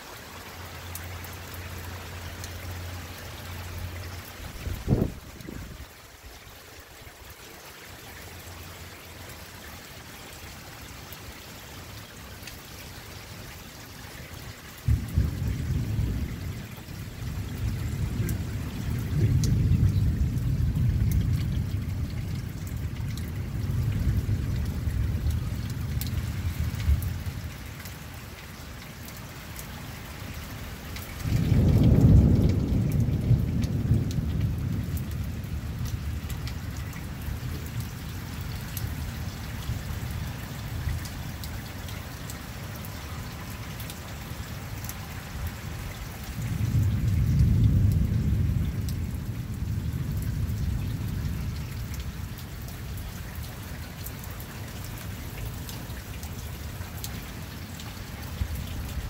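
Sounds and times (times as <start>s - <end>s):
steady rainfall: 0.0s - 59.0s
low rolls of thunder: 4.5s - 5.9s, 14.8s - 27.5s, 31.2s - 41.1s, 45.4s - 53.0s.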